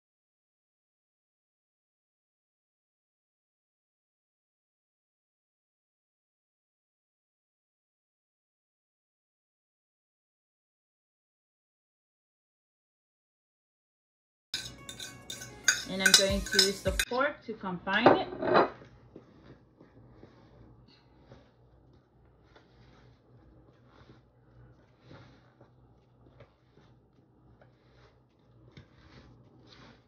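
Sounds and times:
utensil clinking on ceramic plate: 0:14.6 - 0:17.0
hands rubbing flour in bowl: 0:14.6 - 0:17.1, 0:18.8 - 0:30.0.

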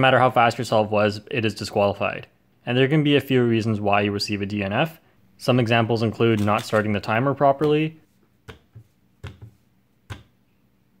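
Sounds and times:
hands tapping plastic touch pads: 0:07.6 - 0:10.4.

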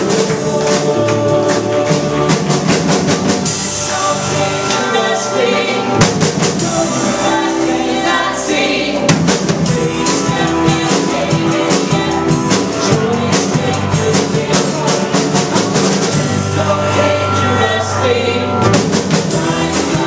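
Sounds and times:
drum kit beat: 0:00.0 - 0:17.7, 0:18.6 - 0:20.0
guitars: 0:00.0 - 0:20.0
keyboard: 0:00.0 - 0:20.0
voices singing: 0:00.0 - 0:20.0.

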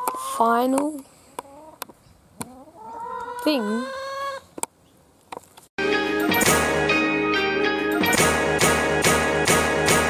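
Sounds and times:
music: 0:05.8 - 0:10.0.

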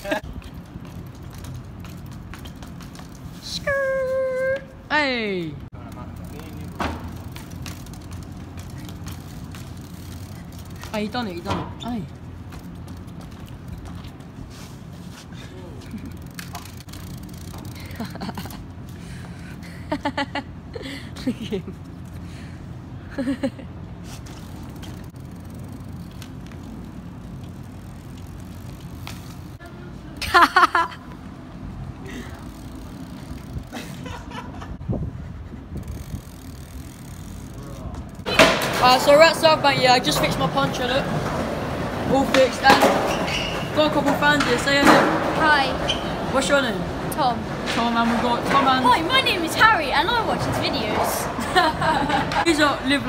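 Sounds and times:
bike tyres rumbling on paving: 0:00.0 - 0:04.6, 0:05.7 - 0:20.4, 0:21.3 - 0:29.7, 0:31.2 - 0:53.0.

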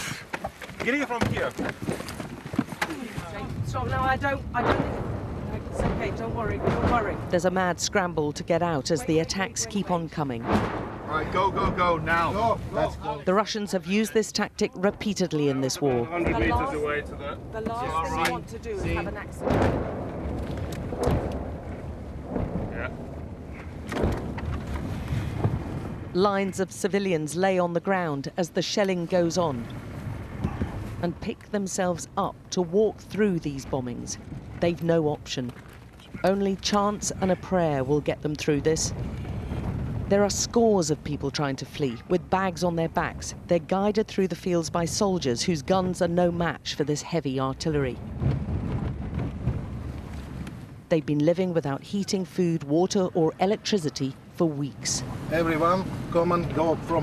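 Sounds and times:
dull thumps: 0:04.6 - 0:07.4.

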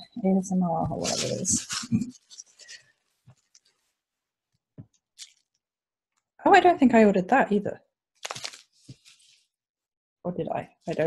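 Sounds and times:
paper wrapping rustling: 0:01.0 - 0:03.9, 0:08.2 - 0:09.5.

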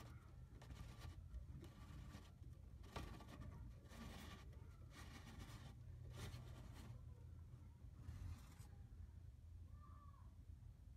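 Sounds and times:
faint scratchy rustles: 0:00.0 - 0:09.0
low steady hum: 0:00.0 - 0:10.9.

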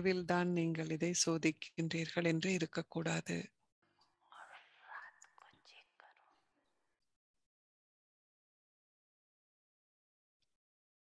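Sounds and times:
faint whispered speech: 0:04.2 - 0:06.7.

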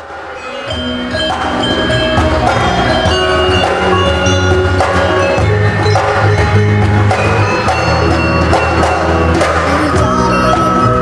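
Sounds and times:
ringing metallophone tones: 0:00.0 - 0:11.0.

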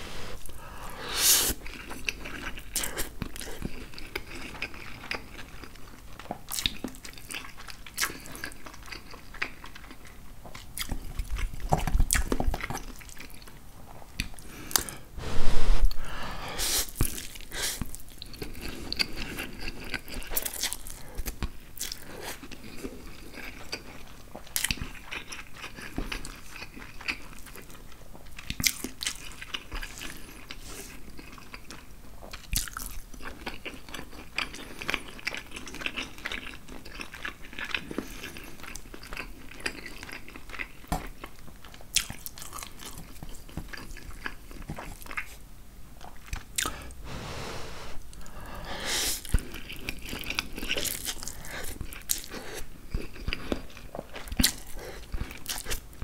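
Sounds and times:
chewing and slurping pasta: 0:00.1 - 0:15.0, 0:16.8 - 0:45.4, 0:46.0 - 0:56.0.

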